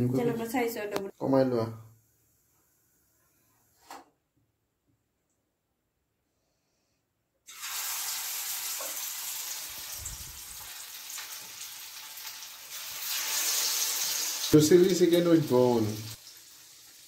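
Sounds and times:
person speaking: 0:00.0 - 0:01.8
chicken deep-frying in oil: 0:07.5 - 0:17.0.

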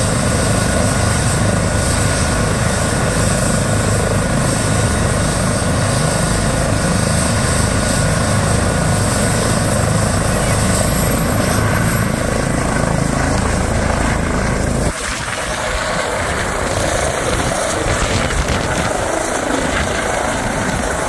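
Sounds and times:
helicopter rotor and turbines running: 0:00.0 - 0:21.0.

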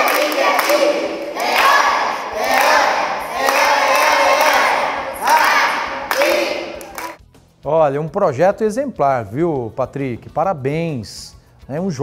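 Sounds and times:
children shouting and cheering: 0:00.0 - 0:07.2.

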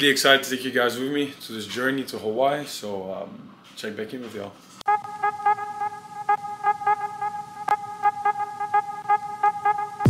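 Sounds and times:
pulsing horn-like tone: 0:04.9 - 0:10.0.

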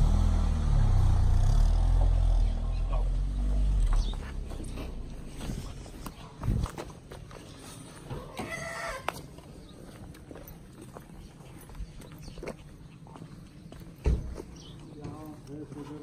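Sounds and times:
footsteps on dry dirt: 0:03.8 - 0:16.0.

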